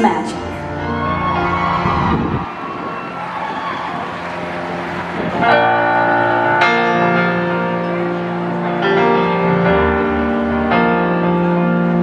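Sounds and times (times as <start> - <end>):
sustained piano chords: 0.0 - 12.0.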